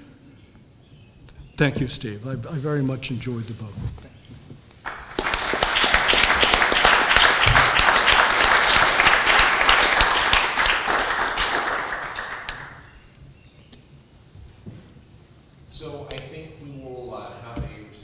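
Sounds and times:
audience applauding: 0:04.8 - 0:13.0.

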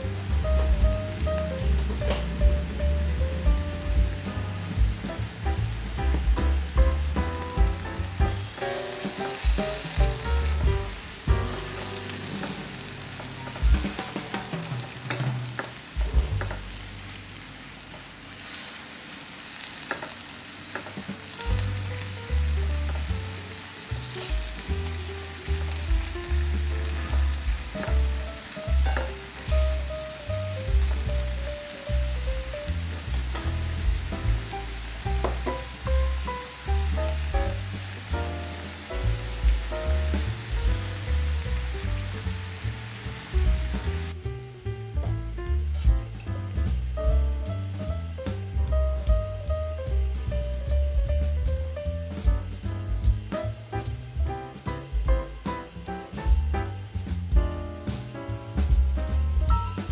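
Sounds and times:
background music with bass line: 0:00.0 - 0:17.4, 0:21.0 - 0:59.9
food sizzling in a frying pan: 0:00.0 - 0:59.9.

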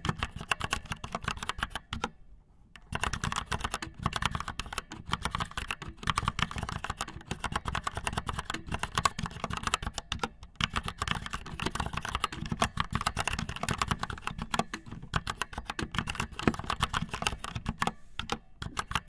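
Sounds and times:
fast typing on mechanical keyboard: 0:00.0 - 0:02.1, 0:02.9 - 0:19.0.

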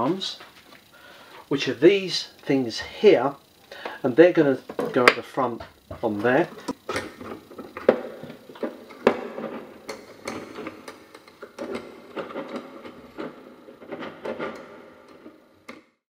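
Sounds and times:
metal parts clicking and clinking: 0:06.0 - 0:15.8.

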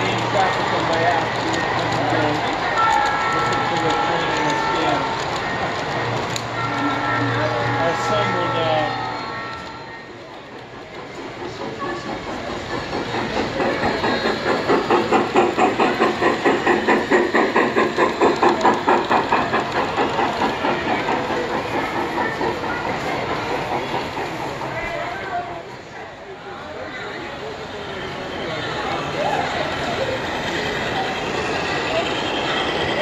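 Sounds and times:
model steam locomotive chuffing: 0:00.0 - 0:33.0.

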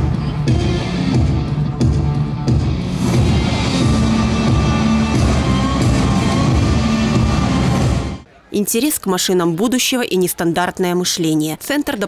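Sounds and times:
loud music: 0:00.0 - 0:08.3.

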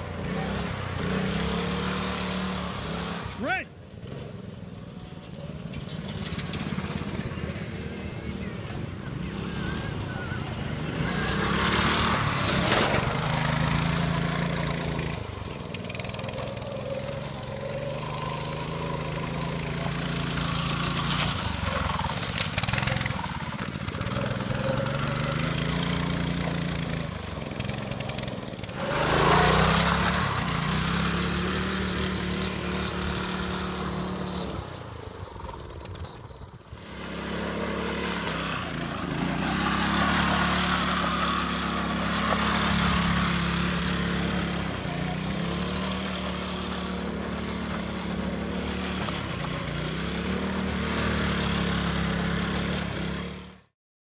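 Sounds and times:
go-kart engine revving: 0:00.0 - 0:53.8.

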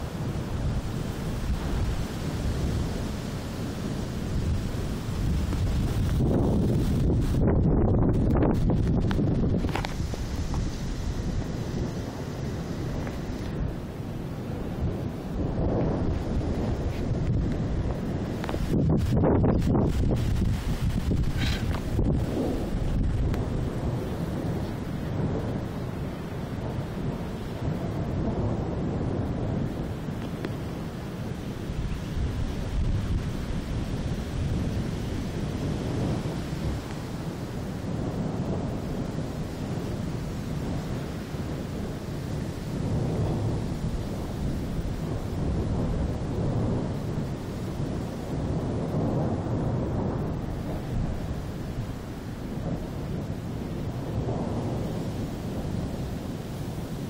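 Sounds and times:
rolling thunder: 0:00.0 - 0:57.0.

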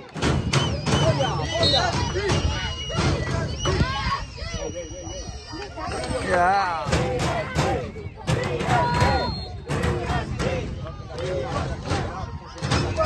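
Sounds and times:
players and spectators shouting: 0:00.0 - 0:13.0.

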